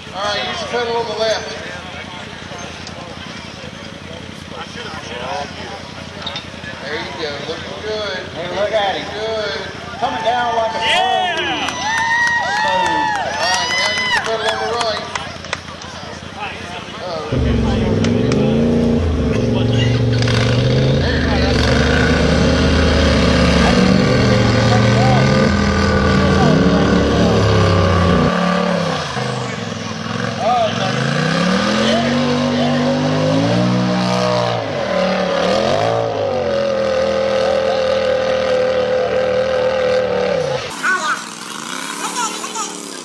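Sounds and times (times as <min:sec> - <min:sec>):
buggy engine revving hard: 0:17.3 - 0:43.0.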